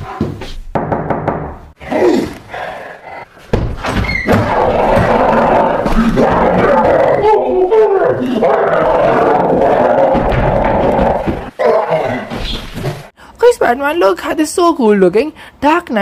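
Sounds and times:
monster growling and roaring: 4.3s - 13.1s.

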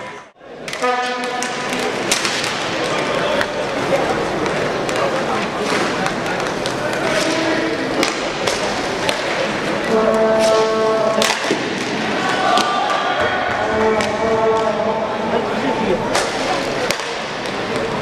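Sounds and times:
crowd noise: 0.0s - 18.0s
sticks and puck clacking: 0.6s - 15.4s, 16.0s - 18.0s.

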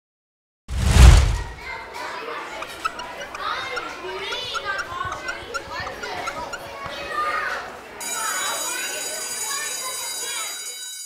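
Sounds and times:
children chattering and calling out: 1.5s - 11.0s.

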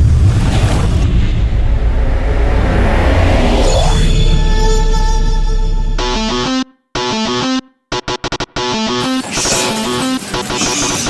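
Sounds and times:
deep low rumble: 0.0s - 6.3s.

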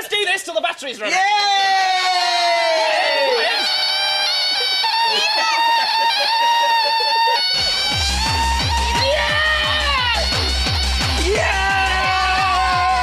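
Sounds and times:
people shouting and cheering: 1.0s - 13.0s
music with thumping beat: 7.6s - 13.0s.

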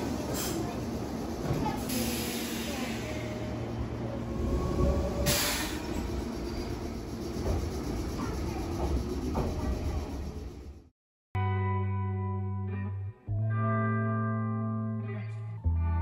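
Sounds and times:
train wheels rumbling on rail: 0.0s - 10.9s.

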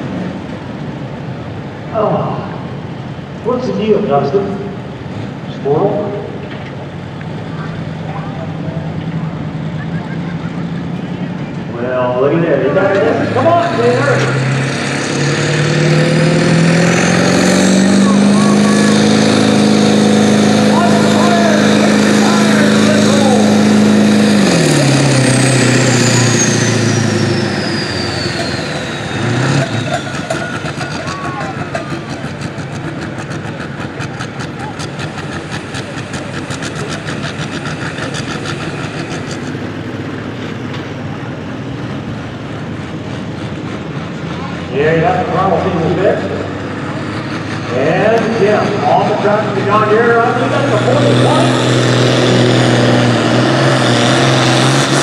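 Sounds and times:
pickup engine revving: 0.0s - 55.0s.

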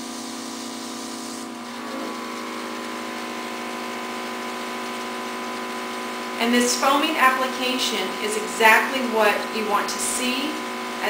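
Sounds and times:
airbrush spraying hiss: 0.0s - 2.0s
air compressor humming: 0.0s - 11.0s.

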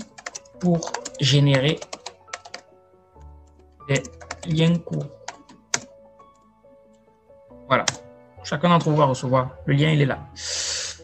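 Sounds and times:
keyboard keystrokes: 0.0s - 2.7s, 3.5s - 5.9s
quiet background music: 0.0s - 11.0s.

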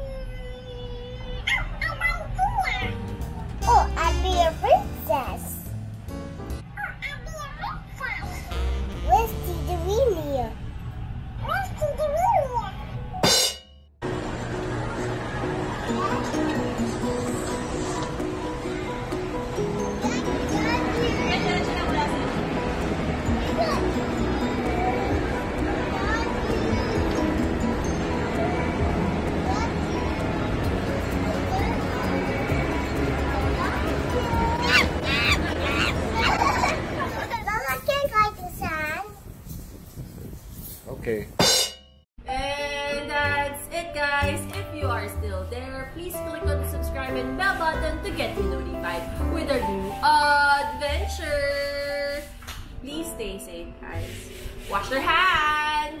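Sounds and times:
child squealing: 0.0s - 3.0s, 34.2s - 36.8s
background music: 2.4s - 6.8s, 8.3s - 10.6s, 13.2s - 36.6s, 42.2s - 56.0s.

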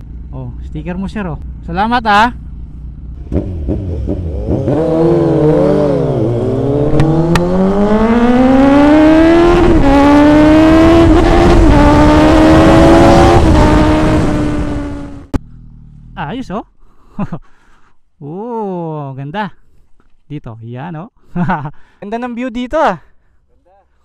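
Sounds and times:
motorcycle engine accelerating: 0.0s - 16.6s
wind noise: 6.4s - 15.3s.

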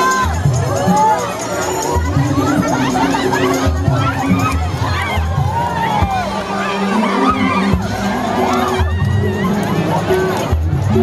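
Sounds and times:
crowd shouting excitedly: 0.0s - 11.0s
music playing: 0.0s - 11.0s.

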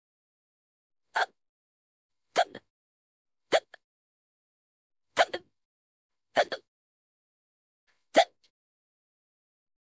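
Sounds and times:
person hiccupping: 5.2s - 5.5s.

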